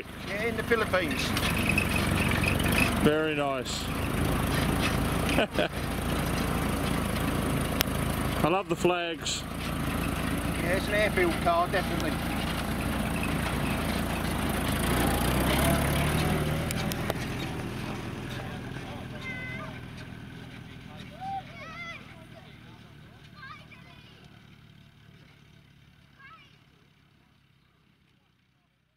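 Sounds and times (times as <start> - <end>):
distant voices calling out: 0.0 - 25.0
jeep engine driving off: 0.0 - 28.1.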